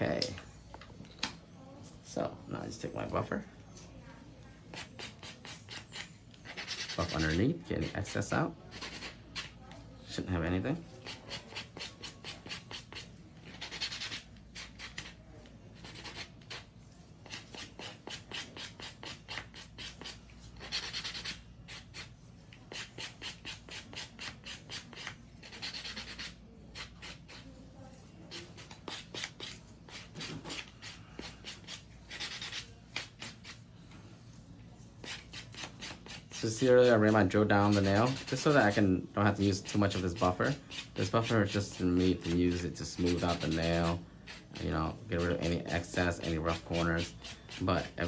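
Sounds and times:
nail buffer rasping on nails: 17.3 - 27.6.

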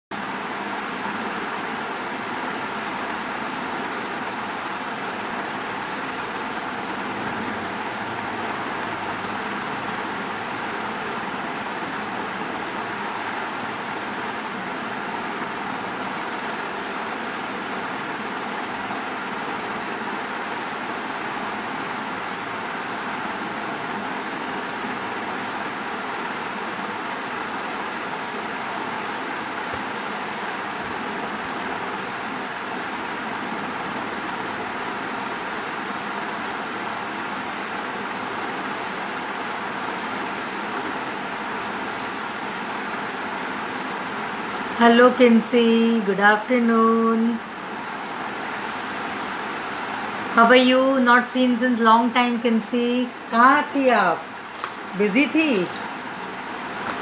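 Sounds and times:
steady rushing noise: 0.1 - 57.0.

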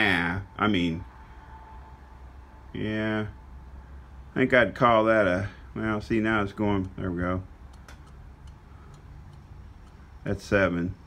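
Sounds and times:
faint metallic ticks: 6.8 - 7.0, 7.6 - 10.2.

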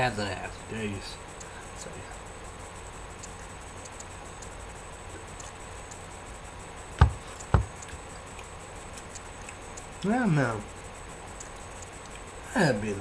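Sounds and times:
steady low hum: 0.0 - 13.0
faint light ticks: 3.2 - 4.6, 5.3 - 6.1, 7.4 - 10.1, 11.3 - 12.3
sharp knocks: 7.0 - 8.0.

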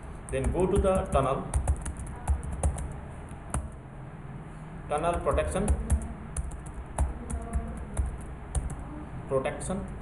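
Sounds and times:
computer keyboard typing: 0.3 - 3.8, 5.0 - 8.8.

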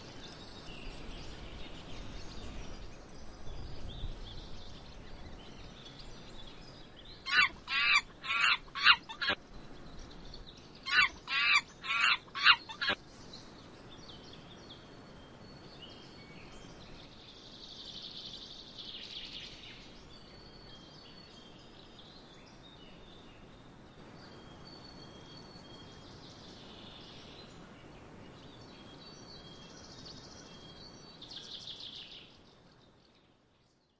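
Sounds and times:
faint bird chirps and trill: 0.0 - 33.9
bird calling with wavering notes: 7.3 - 9.4, 10.9 - 13.0.

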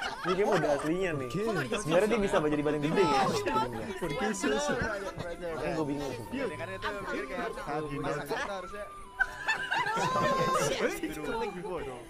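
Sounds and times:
people laughing and snickering: 0.0 - 7.6, 9.1 - 11.2.

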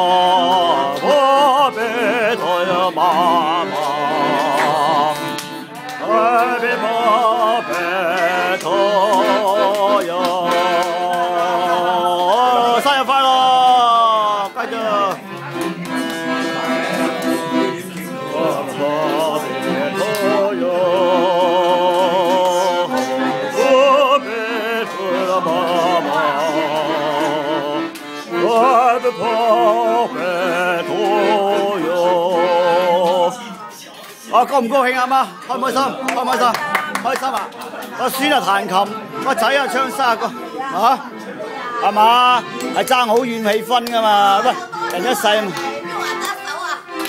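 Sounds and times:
man singing with vibrato: 0.0 - 36.1, 37.9 - 46.2
accordion: 0.0 - 47.0.

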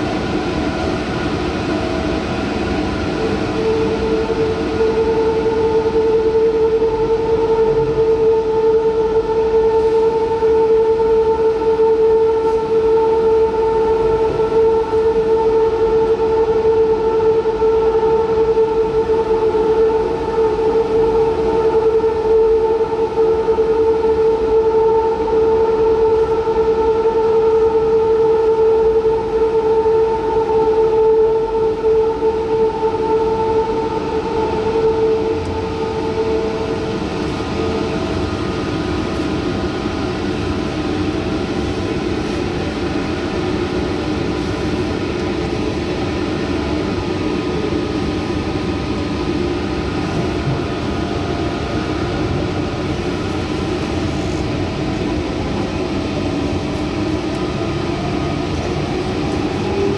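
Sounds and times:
train motor whine: 0.0 - 59.9
wheels rumbling on track: 0.0 - 59.9.

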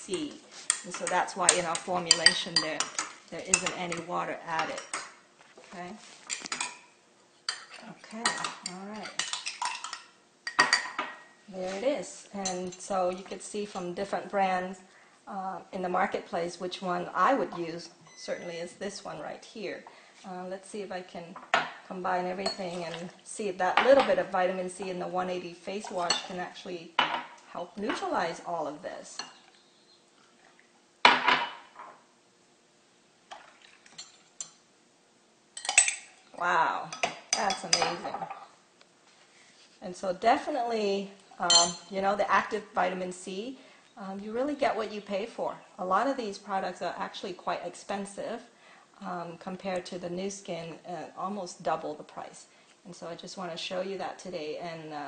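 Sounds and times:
spoon clinking in a glass: 41.5 - 41.9.

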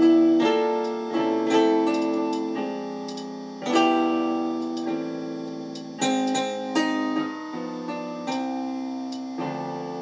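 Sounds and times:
piano playing slow chords: 0.0 - 10.0.

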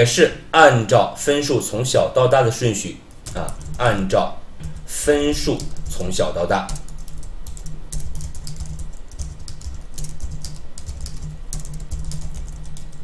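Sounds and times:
steady low hum: 0.0 - 13.0
computer keyboard typing: 3.1 - 13.0.

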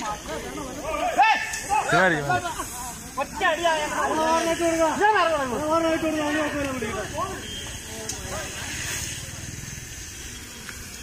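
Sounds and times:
men shouting in alarm: 0.0 - 7.4
faint hiss: 0.0 - 11.0.

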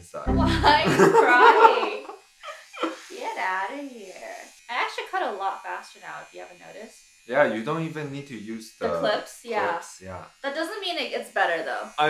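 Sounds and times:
person laughing: 0.3 - 3.1.

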